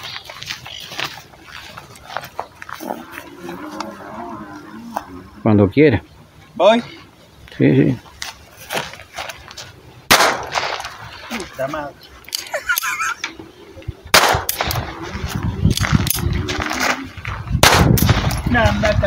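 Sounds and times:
handgun shots: 0:10.1 - 0:10.9, 0:14.1 - 0:14.9, 0:17.6 - 0:18.4.

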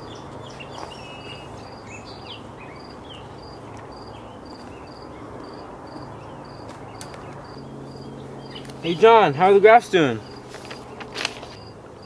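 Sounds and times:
crickets chirping: 0:00.0 - 0:12.0
brief rustle: 0:10.5 - 0:11.7.

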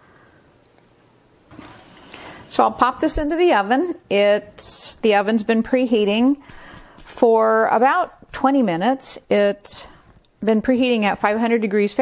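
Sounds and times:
bread loaf rustling: 0:05.7 - 0:09.4.

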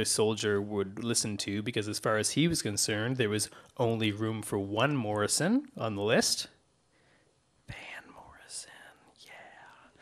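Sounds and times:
faint whispered speech: 0:07.7 - 0:09.9.

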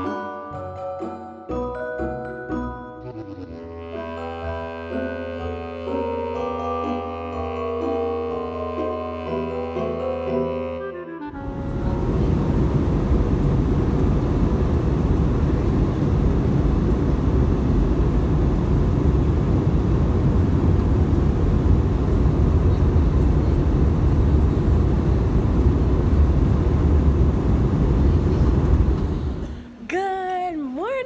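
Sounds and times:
airliner cabin noise: 0:11.3 - 0:30.0.

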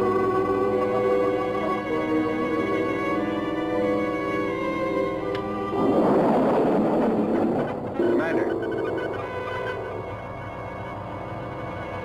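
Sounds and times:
spacecraft thruster rushing: 0:00.4 - 0:10.4
electronic tones with warbling glides: 0:05.7 - 0:10.0.

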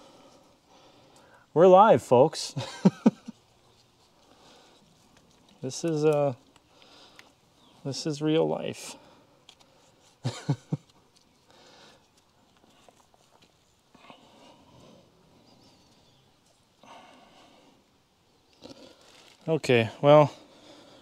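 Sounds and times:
man chuckling: 0:02.6 - 0:03.4, 0:10.2 - 0:10.9.

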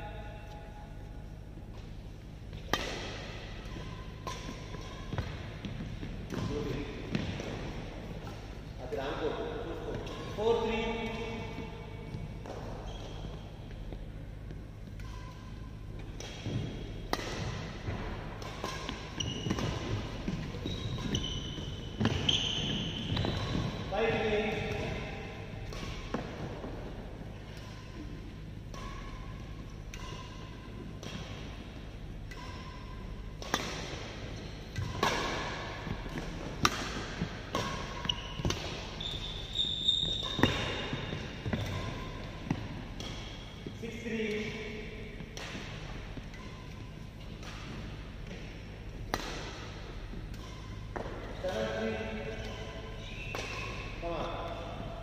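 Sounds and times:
racket hitting shuttlecock: 0:01.7 - 0:08.6, 0:09.8 - 0:55.0.

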